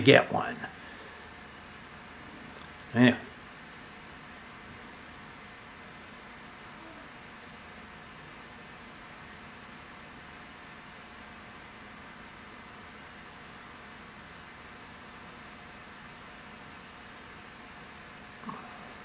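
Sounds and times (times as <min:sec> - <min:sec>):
faint hum: 0:00.0 - 0:19.0
room tone hiss: 0:00.0 - 0:19.0.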